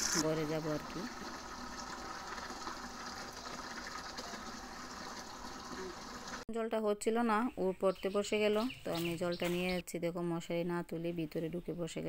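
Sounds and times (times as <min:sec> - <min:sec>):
water pouring into plastic bucket: 0:00.0 - 0:06.4.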